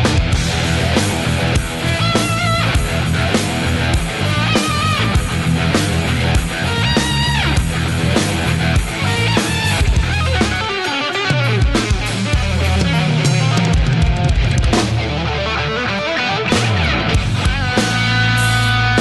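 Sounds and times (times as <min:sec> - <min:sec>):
drum kit: 0:00.0 - 0:19.0
electric bass: 0:00.0 - 0:19.0
electric guitar lead lines: 0:00.0 - 0:19.0.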